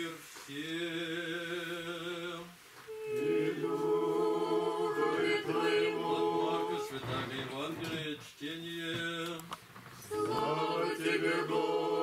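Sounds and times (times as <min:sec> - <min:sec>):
group singing chant a cappella: 0:00.0 - 0:12.0.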